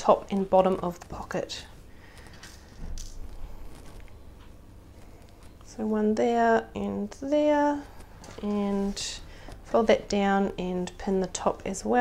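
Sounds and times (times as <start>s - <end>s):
stiff fabric rustling: 0.1s - 5.8s, 6.6s - 10.5s.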